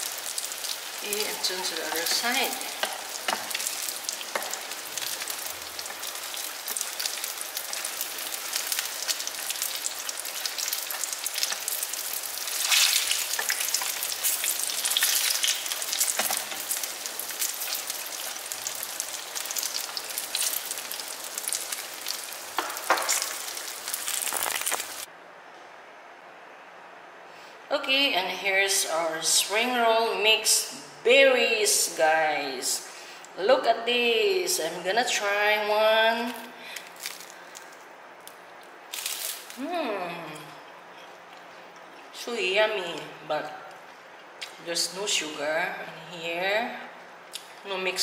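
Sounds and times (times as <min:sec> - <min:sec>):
spring rolls sizzling in hot oil: 0:00.0 - 0:25.1.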